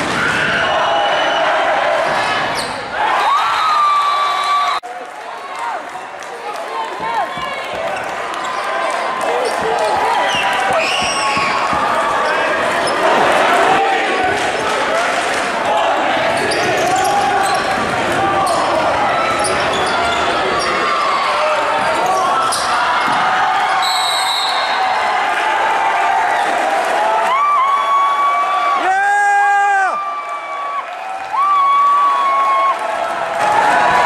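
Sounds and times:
crowd chatter: 4.8s - 27.4s
sneaker squeaks: 7.0s - 13.1s, 19.4s - 21.0s, 21.8s - 24.7s
referee's whistle: 10.2s - 11.7s, 23.8s - 24.8s.

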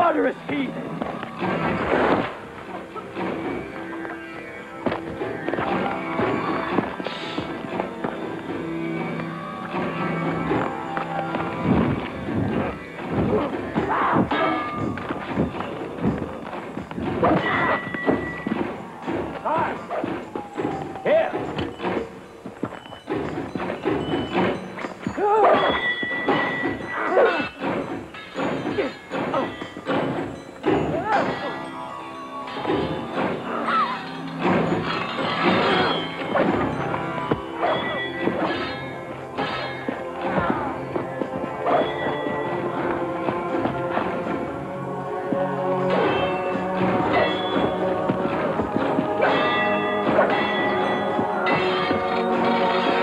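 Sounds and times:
film music: 0.0s - 53.0s
people shouting and grunting: 9.8s - 22.0s, 25.0s - 27.9s, 28.5s - 31.8s, 32.6s - 53.0s.

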